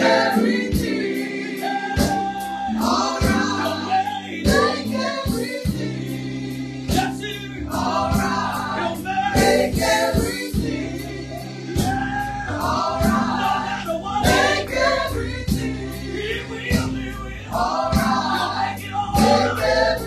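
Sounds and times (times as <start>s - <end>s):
gospel group singing in chorus: 0.0s - 20.0s
low held accompaniment: 0.0s - 20.0s.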